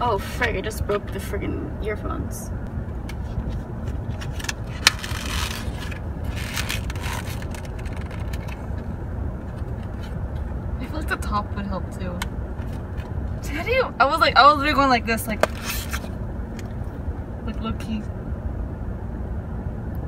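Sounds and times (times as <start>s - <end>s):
car interior rumble: 0.0s - 20.0s
plastic packaging clicks and scraping: 3.9s - 8.8s.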